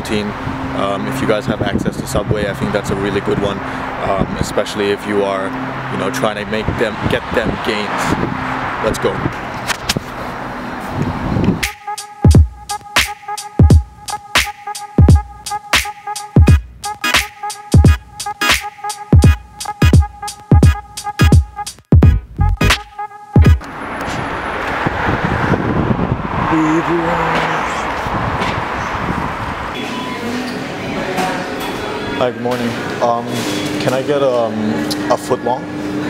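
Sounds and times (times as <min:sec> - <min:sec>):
passing cars rushing: 0:00.0 - 0:11.7, 0:23.4 - 0:36.0
road traffic and street noise: 0:00.0 - 0:36.0
music with heavy bass beat: 0:11.6 - 0:23.7.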